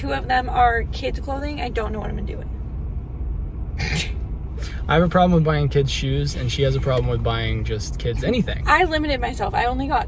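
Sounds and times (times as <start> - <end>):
car engine rumble: 0.0 - 10.0.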